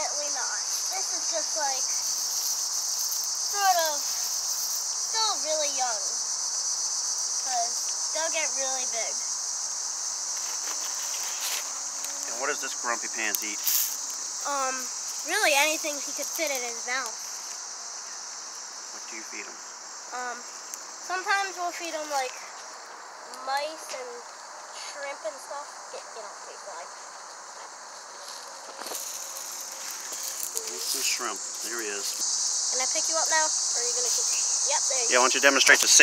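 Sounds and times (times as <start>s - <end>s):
insects singing: 0.0s - 36.0s.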